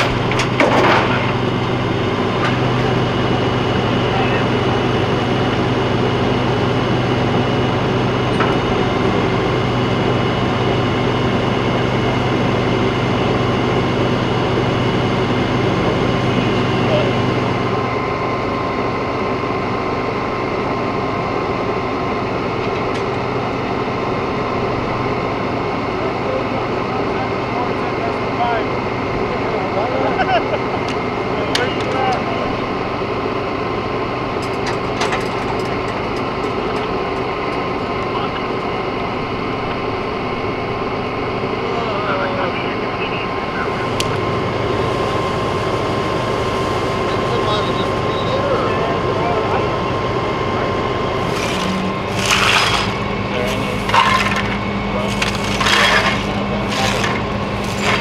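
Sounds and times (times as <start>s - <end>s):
vehicles idling: 0.0s - 58.0s
faint indistinct voices: 41.4s - 45.0s, 46.9s - 52.0s.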